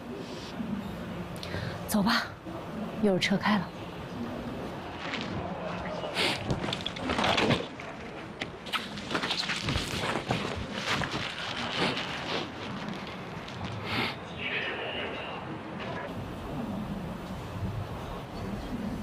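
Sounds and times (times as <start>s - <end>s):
footsteps: 4.9s - 14.1s
backpack rustling: 8.7s - 13.8s.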